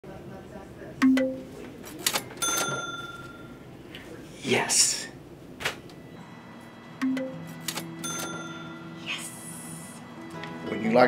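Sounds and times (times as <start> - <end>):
cash register ka-ching effect: 2.0 - 3.5, 7.0 - 8.9.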